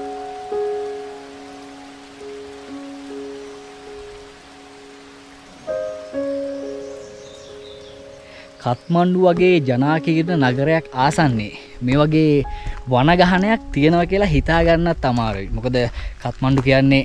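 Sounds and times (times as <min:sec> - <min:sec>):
steady hiss: 0:00.0 - 0:09.0
slow piano music: 0:00.0 - 0:15.8.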